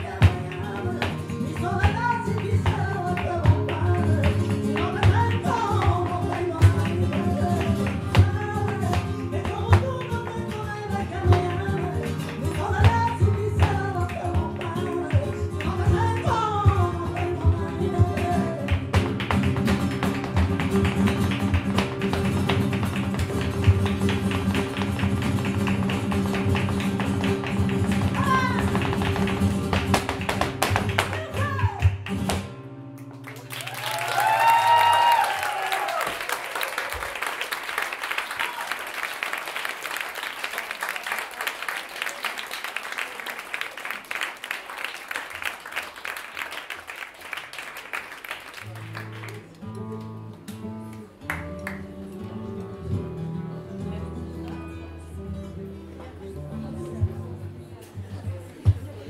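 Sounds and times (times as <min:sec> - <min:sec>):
dancer footwork: 0:00.0 - 0:32.6
flamenco guitars: 0:00.0 - 0:59.0
audience applause: 0:33.2 - 0:49.9.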